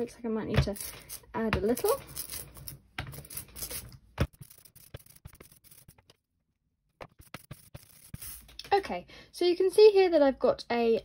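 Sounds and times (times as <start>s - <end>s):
rubber roller rolling through ink: 3.2s - 6.1s.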